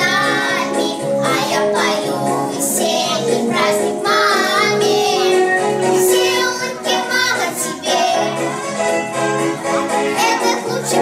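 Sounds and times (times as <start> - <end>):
girls singing together: 0.0 - 8.5, 10.2 - 11.0
instrumental accompaniment: 0.0 - 11.0.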